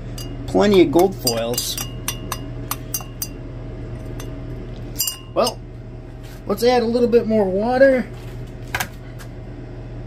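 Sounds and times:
glass rod clinking in beaker: 0:00.1 - 0:03.4, 0:05.0 - 0:05.6.

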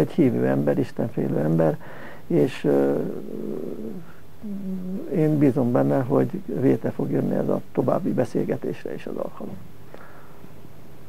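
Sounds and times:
man humming: 0:02.5 - 0:05.8
man's creaky hesitation sound: 0:02.6 - 0:05.4.

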